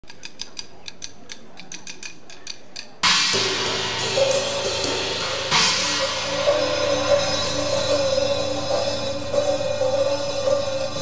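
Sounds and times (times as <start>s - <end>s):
crashing cymbals: 3.0s - 11.0s
drum kit playing: 3.0s - 11.0s.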